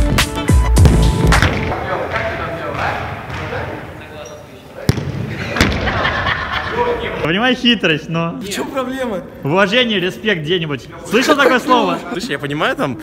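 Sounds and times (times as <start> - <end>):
music: 0.0 - 1.8.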